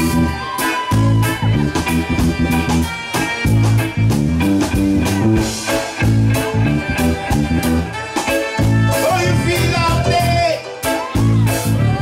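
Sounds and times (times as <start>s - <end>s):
bass notes: 0.0s - 12.0s
guitar chords: 0.0s - 12.0s
steady drum beat: 0.0s - 12.0s.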